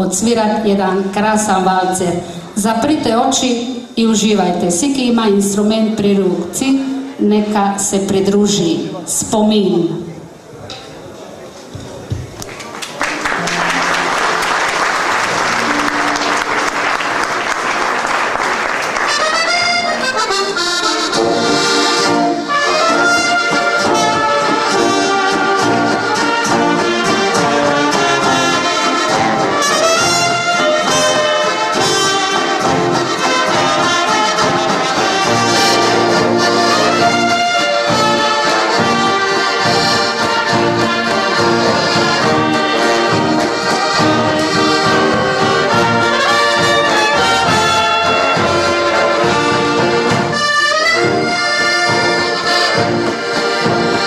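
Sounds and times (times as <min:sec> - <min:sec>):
band playing a waltz: 0:13.1 - 0:54.0.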